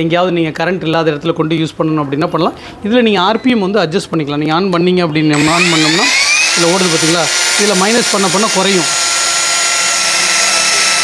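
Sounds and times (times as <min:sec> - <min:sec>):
angle grinder motor whine: 0:05.3 - 0:11.0.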